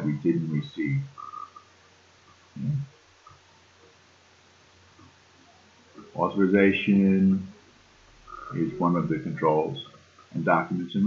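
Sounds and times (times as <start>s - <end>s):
man saying a word: 0.0s - 1.1s, 2.6s - 2.8s, 6.2s - 7.5s, 8.5s - 11.0s.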